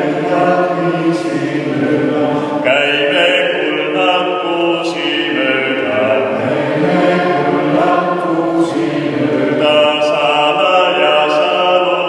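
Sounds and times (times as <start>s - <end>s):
group singing a slow hymn: 0.0s - 12.0s.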